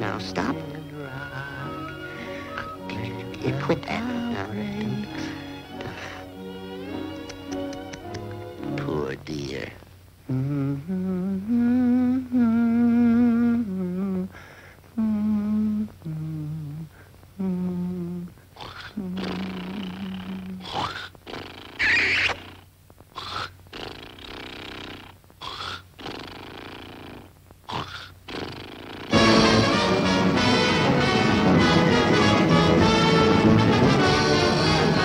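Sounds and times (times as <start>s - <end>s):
cartoon voice humming lullaby: 0.0s - 5.4s, 10.3s - 14.3s, 15.0s - 21.1s
rough breathy vocal noises: 1.3s - 3.3s, 16.1s - 21.8s
sharp high cry: 21.8s - 22.4s.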